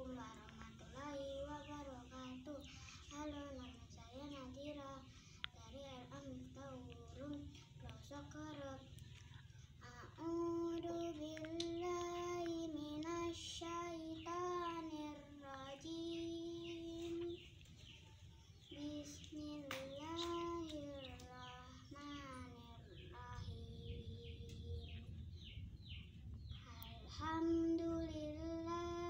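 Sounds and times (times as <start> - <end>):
girl chanting melodic recitation: 0.0 - 29.0.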